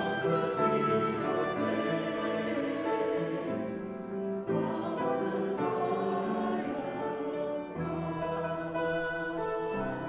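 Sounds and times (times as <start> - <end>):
woodwind holding long notes: 0.0 - 3.8, 7.2 - 10.0
upright piano chords: 0.0 - 10.0.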